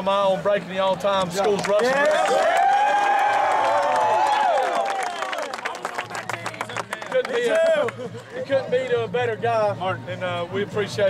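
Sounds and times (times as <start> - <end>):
hand clapping: 1.4 - 8.0
players cheering and whooping: 1.9 - 6.2.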